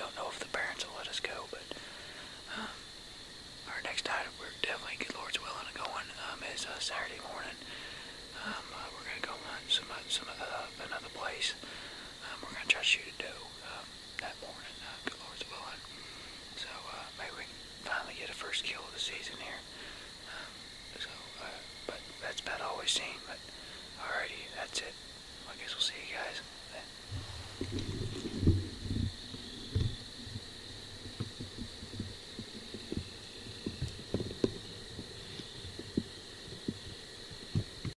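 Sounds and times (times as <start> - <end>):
person whispering: 0.0 - 1.8, 2.5 - 2.8, 3.7 - 7.7, 8.4 - 11.6, 12.2 - 15.9, 16.6 - 19.7, 20.3 - 26.9
microphone handling thumps: 27.1 - 36.8.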